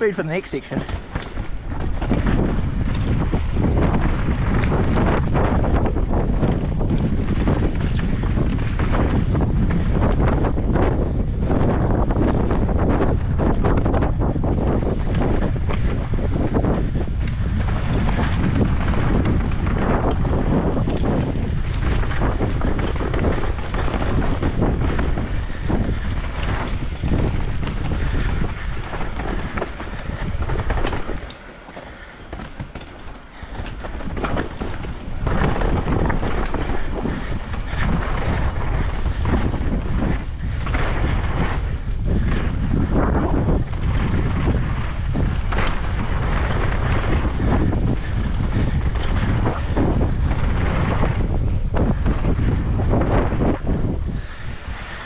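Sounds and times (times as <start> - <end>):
bike rattling over bumps: 0.0 - 55.0
bike tyres rolling on dirt: 0.0 - 55.0
wind on microphone: 0.0 - 55.0.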